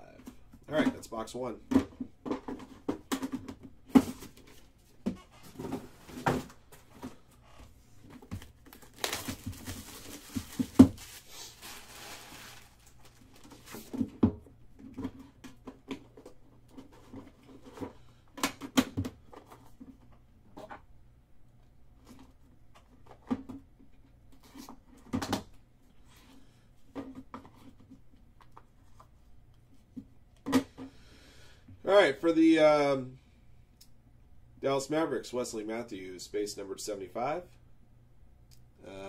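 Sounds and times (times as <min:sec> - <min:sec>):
cardboard rustling: 0:02.3 - 0:14.2.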